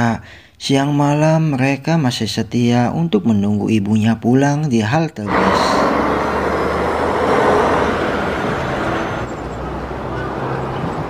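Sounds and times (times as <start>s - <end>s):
bus engine and road noise: 5.3s - 11.0s.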